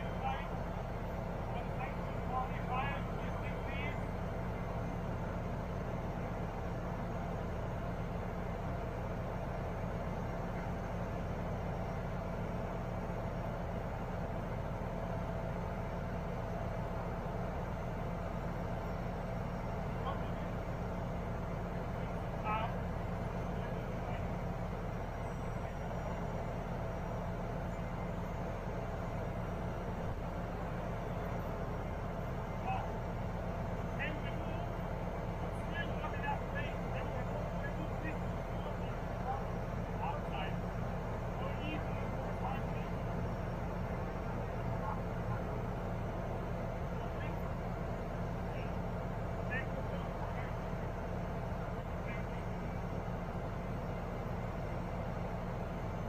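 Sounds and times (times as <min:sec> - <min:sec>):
faint voices: 0:00.0 - 0:15.2, 0:16.6 - 0:56.0
diesel engine humming: 0:00.0 - 0:56.0.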